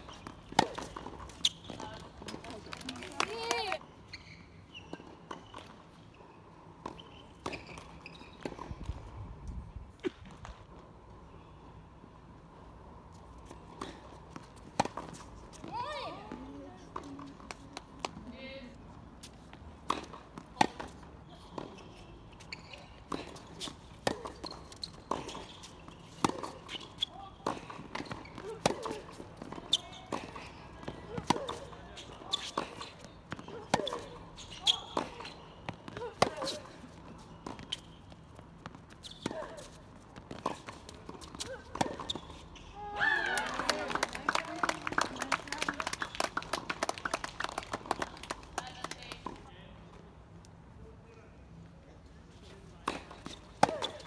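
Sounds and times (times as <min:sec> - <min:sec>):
tennis ball bouncing: 0:00.0 - 0:03.7, 0:13.4 - 0:18.3, 0:19.8 - 0:21.8, 0:22.4 - 0:42.4, 0:52.8 - 0:54.0.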